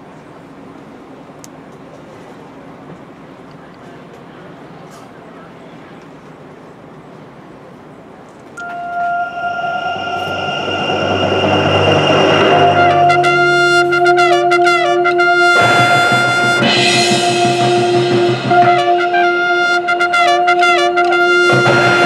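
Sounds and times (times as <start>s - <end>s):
marching band brass and winds: 8.6s - 22.0s.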